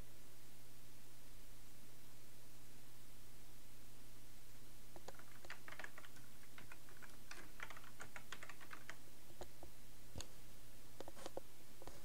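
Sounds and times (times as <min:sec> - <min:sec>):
typing on computer keyboard: 0:05.0 - 0:09.0.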